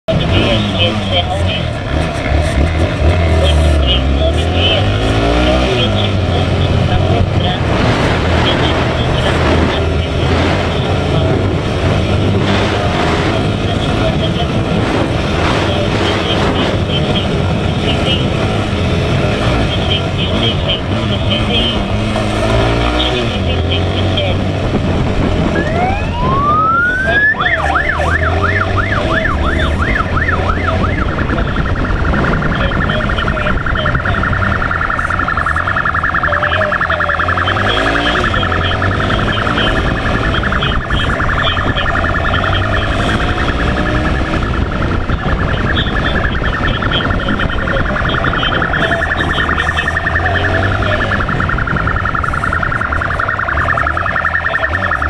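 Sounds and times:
motorcycle engines revving: 0.0s - 55.0s
police siren wailing and yelping: 0.1s - 24.7s, 25.3s - 55.0s.

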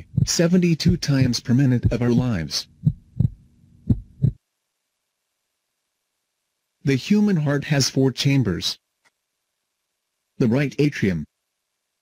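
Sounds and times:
heartbeat thumps: 0.0s - 4.4s.

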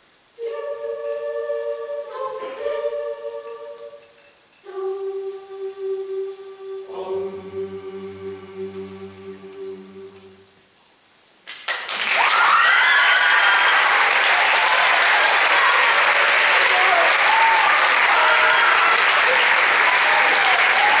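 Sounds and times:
audience applause: 11.5s - 21.0s
people cheering: 11.9s - 21.0s.

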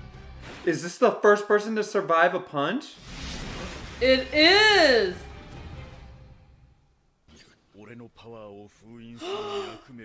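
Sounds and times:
man gasping: 9.2s - 9.9s.

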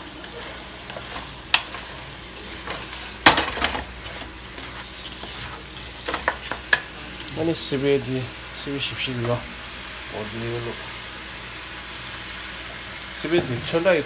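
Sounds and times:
meat sizzling in a wok: 0.0s - 14.0s
spatula scraping and knocking pan: 0.2s - 6.9s.

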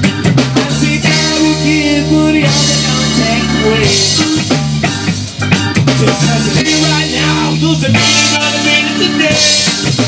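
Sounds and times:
bass: 0.0s - 10.0s
drum kit: 0.0s - 10.0s
guitar: 0.0s - 10.0s.

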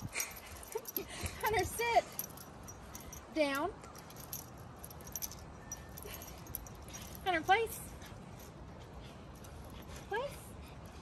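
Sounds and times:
leash and collar jingling: 0.0s - 11.0s
low outdoor background: 0.0s - 11.0s.

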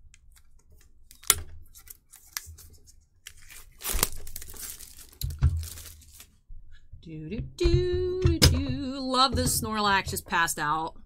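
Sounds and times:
plastic packaging tearing and crinkling: 0.3s - 6.4s.

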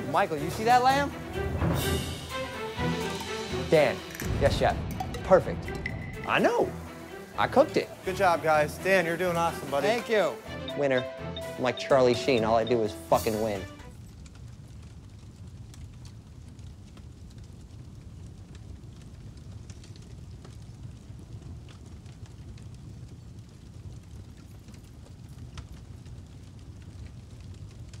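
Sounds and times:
faint fire crackles: 0.0s - 28.0s
low rumble of flames: 0.0s - 28.0s.

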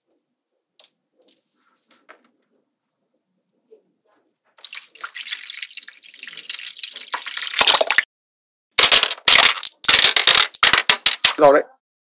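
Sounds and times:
loud clacks: 8.8s - 11.4s
magnetic balls clicking: 8.8s - 11.4s.

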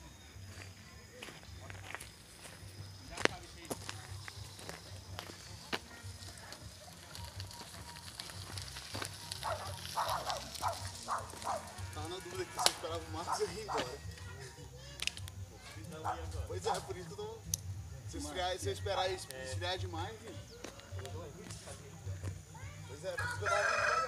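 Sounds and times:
faint distant voices: 0.0s - 24.0s.

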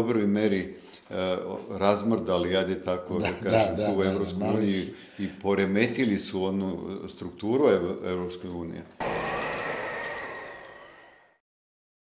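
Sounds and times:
steady high tone: 9.0s - 11.4s.

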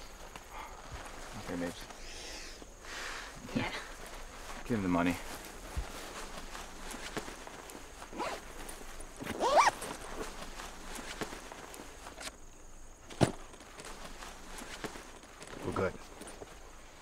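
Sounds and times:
footsteps on grass: 2.6s - 17.0s.

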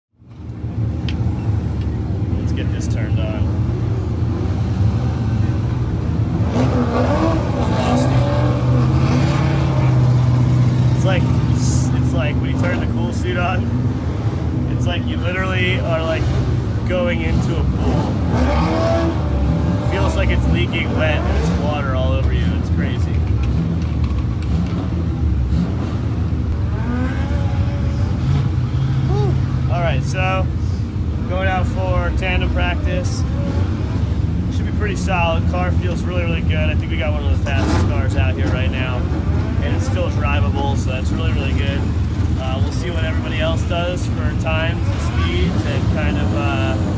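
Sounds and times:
man talking: 2.3s - 3.6s, 10.9s - 13.7s, 14.7s - 17.8s, 19.8s - 23.2s, 29.2s - 30.6s, 31.2s - 33.3s, 34.5s - 46.9s
race car engine idling: 19.3s - 46.9s.

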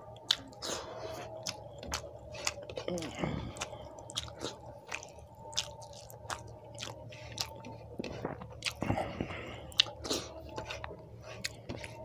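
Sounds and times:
chewing with wet mouth clicks: 0.0s - 12.0s
faint steady hum: 0.0s - 12.0s.

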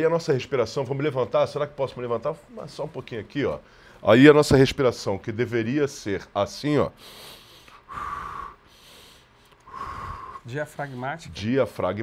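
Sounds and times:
man breathing deeply: 7.0s - 11.0s.

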